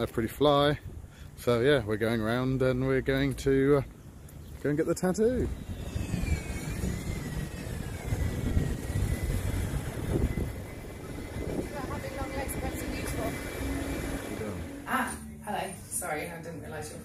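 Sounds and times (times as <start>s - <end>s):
engine rumble: 0.0s - 17.0s
high whine falling in pitch: 5.1s - 15.7s.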